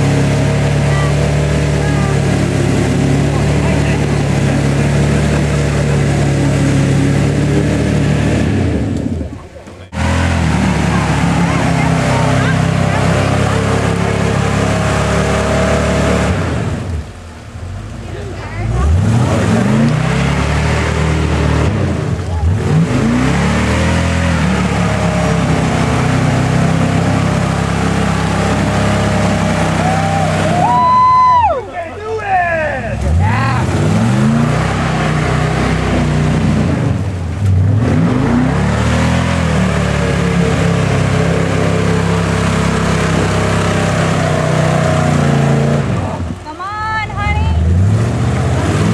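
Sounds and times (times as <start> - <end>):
engine revving hard: 0.0 - 17.1, 18.6 - 31.4, 32.6 - 46.4, 47.1 - 48.9.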